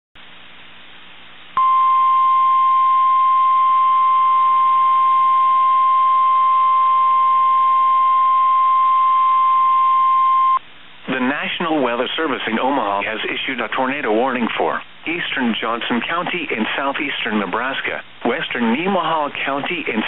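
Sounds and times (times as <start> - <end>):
steady alarm tone: 1.6 - 10.6
radio hiss: 10.8 - 20.0.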